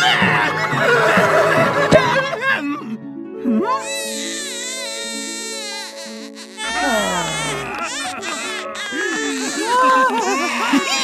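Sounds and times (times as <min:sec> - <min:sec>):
background music: 0:00.0 - 0:11.0
high-pitched creature wailing: 0:05.8 - 0:11.0.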